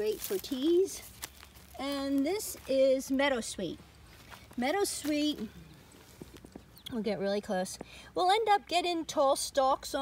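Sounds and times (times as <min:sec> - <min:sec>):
woman speaking: 0:00.0 - 0:01.1, 0:01.7 - 0:03.8, 0:04.6 - 0:05.6, 0:06.9 - 0:10.0.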